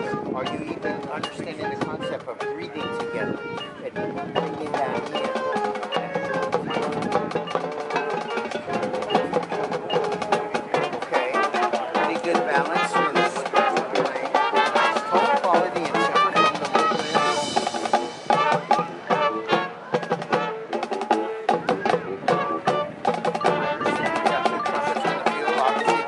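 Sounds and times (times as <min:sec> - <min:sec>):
drumline percussion: 0:00.0 - 0:26.0
marching band playing: 0:00.0 - 0:26.0
massed brass: 0:04.8 - 0:26.0.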